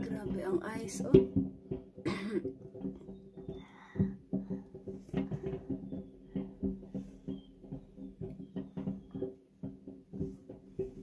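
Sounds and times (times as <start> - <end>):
person coughing: 2.1 - 2.5.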